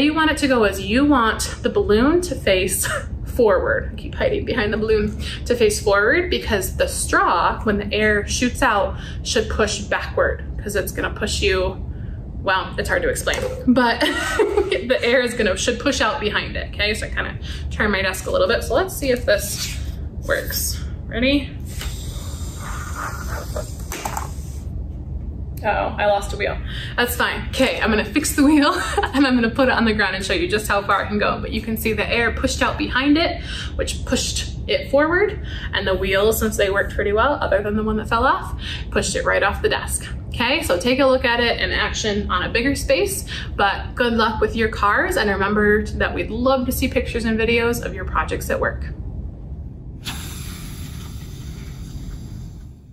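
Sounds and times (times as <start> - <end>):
air hissing from balloon: 21.6 - 24.8, 50.0 - 52.9
low rumble: 45.2 - 52.9.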